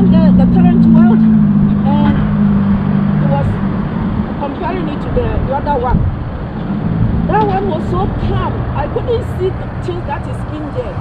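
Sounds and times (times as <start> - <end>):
people talking: 0.0 - 2.2, 3.2 - 3.6, 4.4 - 6.1, 7.3 - 11.0
vehicle engine running: 0.0 - 11.0.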